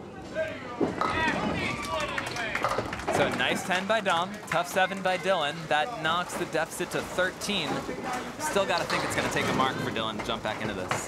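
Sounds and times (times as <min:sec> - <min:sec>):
ball knocking pins: 0:02.6 - 0:03.4, 0:08.7 - 0:11.0
people talking: 0:03.1 - 0:11.0.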